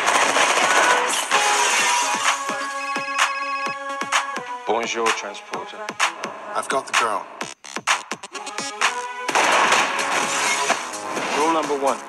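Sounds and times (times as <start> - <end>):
action soundtrack music: 0.0 - 12.0.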